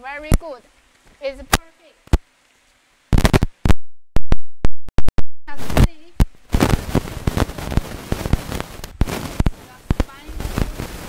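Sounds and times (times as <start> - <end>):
sharp loud clicks: 3.1 - 3.8.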